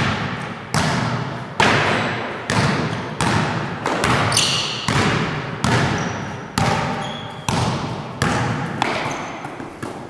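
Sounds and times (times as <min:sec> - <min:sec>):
basketball bouncing on hardwood floor: 0:00.0 - 0:10.0.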